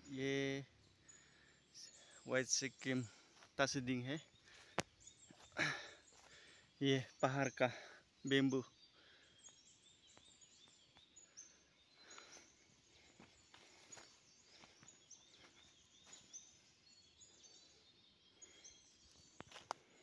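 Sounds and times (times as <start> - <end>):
faint high bird chirps: 0.0 - 20.0.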